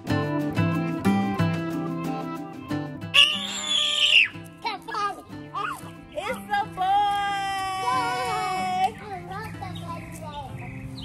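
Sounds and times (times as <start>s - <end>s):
background music: 0.0s - 9.5s
people screaming and shouting: 3.1s - 4.4s
loud shriek: 3.2s - 4.4s.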